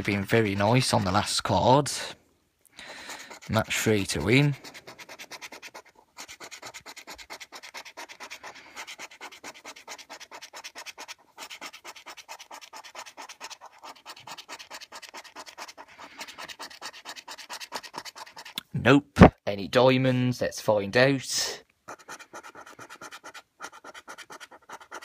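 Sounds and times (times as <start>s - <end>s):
scratchcard scraping: 0.0s - 1.7s, 2.8s - 18.6s, 21.9s - 25.0s.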